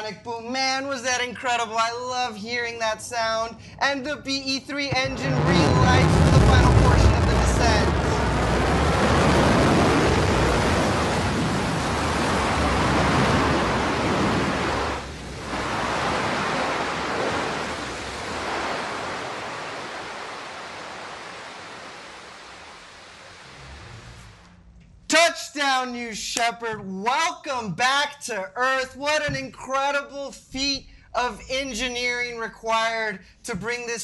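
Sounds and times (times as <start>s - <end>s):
rocket engine roaring: 4.8s - 20.7s.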